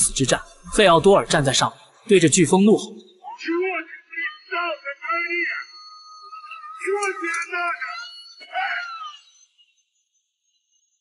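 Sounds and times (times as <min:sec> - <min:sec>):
man shouting: 0:03.3 - 0:05.6, 0:06.8 - 0:09.0.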